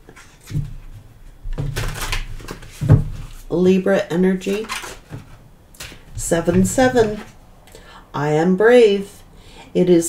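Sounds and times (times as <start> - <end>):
cards being shuffled: 1.6 - 3.5, 4.4 - 7.3.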